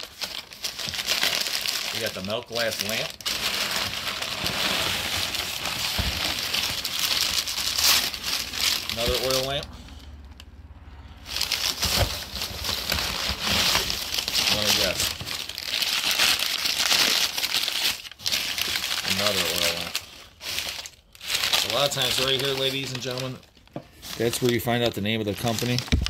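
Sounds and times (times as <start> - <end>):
paper crinkling and rustling: 0.0 - 10.0, 11.2 - 26.0.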